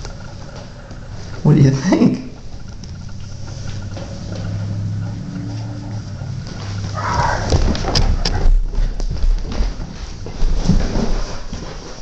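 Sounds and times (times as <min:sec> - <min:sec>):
low steady hum: 0:00.0 - 0:12.0
kitten paws scampering on wood floor: 0:02.4 - 0:12.0.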